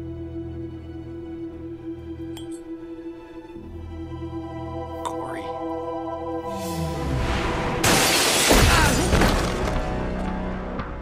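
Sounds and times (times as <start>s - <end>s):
orchestral film music: 0.0s - 11.0s
glass shards scattering: 7.8s - 9.6s
glass shattering: 7.8s - 9.8s.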